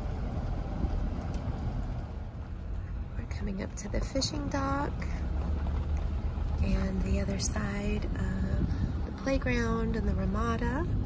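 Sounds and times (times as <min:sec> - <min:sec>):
car driving slowly: 0:00.0 - 0:11.0.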